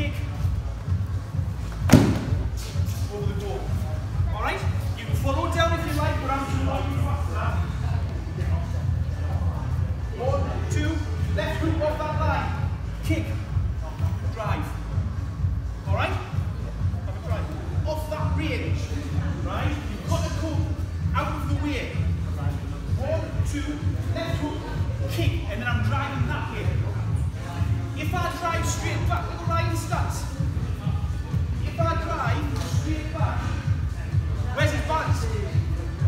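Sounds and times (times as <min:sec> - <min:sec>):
background music with pulsing bass: 0:00.0 - 0:36.0
bodies thudding on gym mat: 0:01.8 - 0:02.6.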